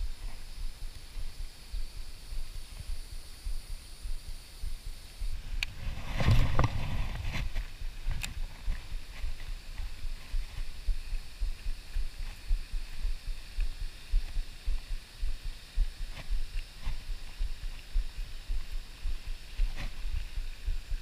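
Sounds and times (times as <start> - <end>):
thumping and rumbling handling noise: 5.6 - 9.3.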